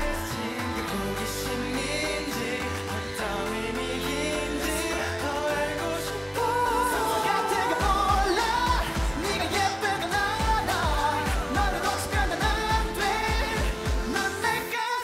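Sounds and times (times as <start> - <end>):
pop backing track with kick drum: 0.0 - 14.7
male voices singing: 0.0 - 15.0.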